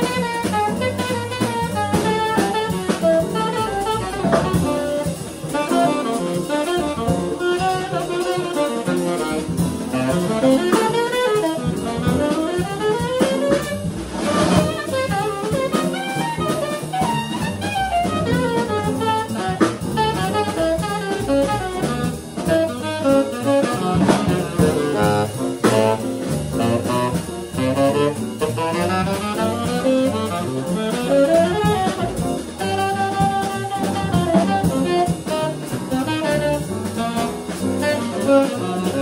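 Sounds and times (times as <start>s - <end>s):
drum kit with ride cymbal: 0.0s - 39.0s
piano: 0.0s - 39.0s
upright double bass: 0.0s - 39.0s
saxophone runs: 14.6s - 39.0s.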